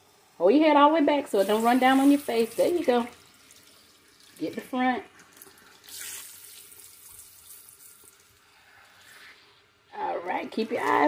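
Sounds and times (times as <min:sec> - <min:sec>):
water spraying over hair: 0:00.4 - 0:09.4.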